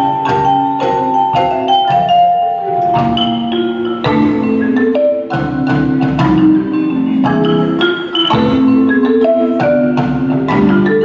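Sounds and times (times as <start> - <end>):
marimba ensemble playing: 0.0 - 11.0.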